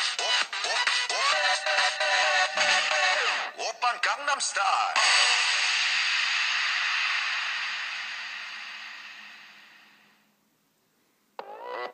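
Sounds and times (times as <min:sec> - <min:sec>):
steady hiss-like noise: 0:05.0 - 0:11.4.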